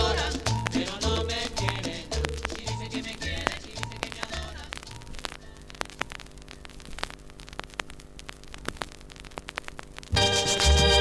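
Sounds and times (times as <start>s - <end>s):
cumbia music: 0.0s - 6.3s, 10.1s - 11.0s
low steady hum: 0.0s - 11.0s
vinyl surface noise crackle: 0.0s - 11.0s.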